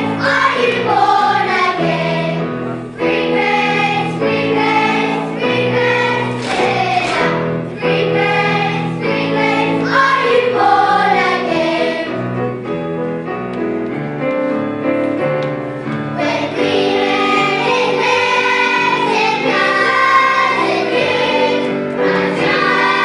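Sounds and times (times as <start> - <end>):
children's choir singing: 0.0 - 12.4, 16.1 - 23.0
low accompanying notes: 0.0 - 23.0.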